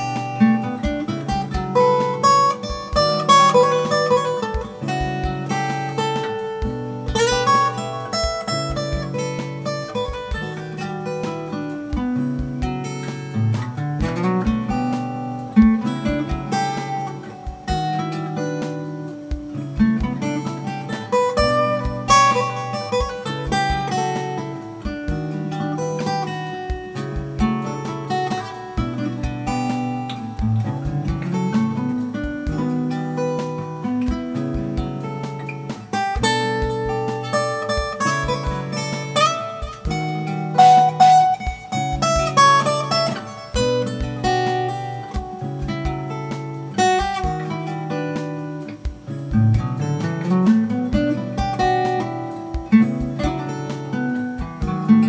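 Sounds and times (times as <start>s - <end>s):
acoustic guitar picking: 0.0s - 55.0s.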